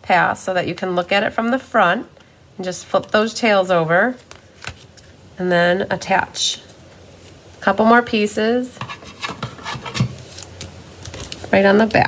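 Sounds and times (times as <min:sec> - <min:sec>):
hands rustling card and tape: 0:04.0 - 0:05.3, 0:08.8 - 0:12.0.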